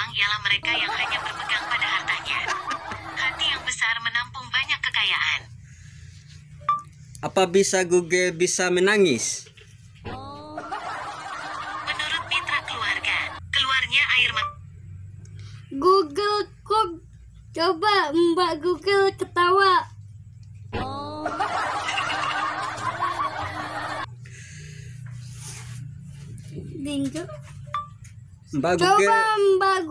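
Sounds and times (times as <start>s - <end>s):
people laughing: 0.7s - 3.6s, 10.2s - 13.4s, 20.9s - 24.2s.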